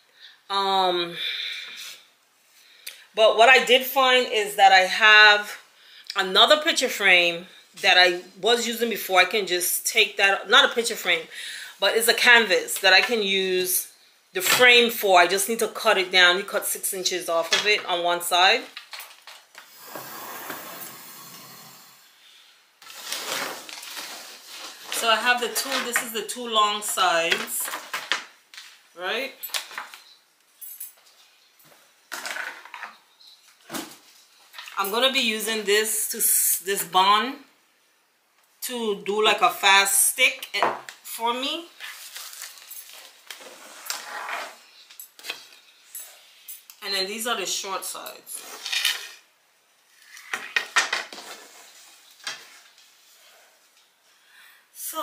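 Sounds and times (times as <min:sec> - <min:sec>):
wood rubbing on tabletop: 0:19.8 - 0:21.9.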